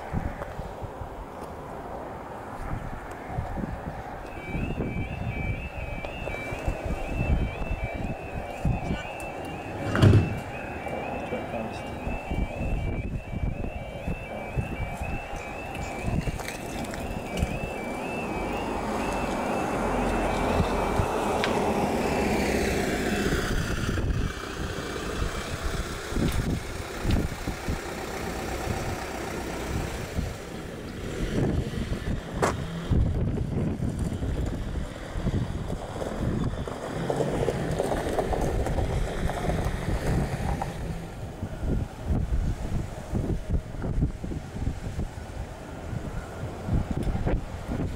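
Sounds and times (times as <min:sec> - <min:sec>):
road vehicle passing: 0:00.0 - 0:47.9
warbling two-tone crossing alarm: 0:04.2 - 0:24.3.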